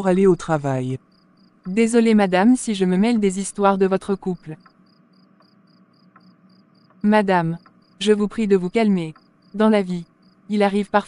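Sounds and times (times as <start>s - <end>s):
faint cricket chirping: 0.0s - 11.0s.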